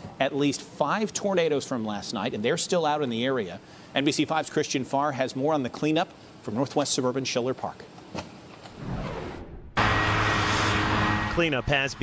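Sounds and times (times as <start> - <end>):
outdoor noise: 2.6 - 12.0
low motor hum: 8.8 - 12.0.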